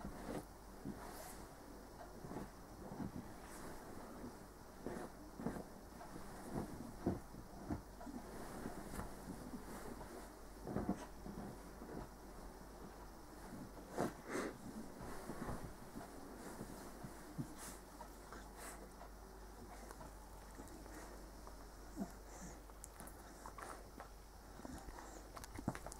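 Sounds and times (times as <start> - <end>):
rustling of bedding: 0.0 - 25.9.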